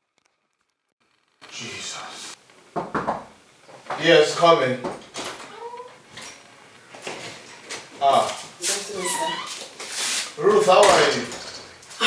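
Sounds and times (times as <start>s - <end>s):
woman speaking: 8.6s - 9.4s.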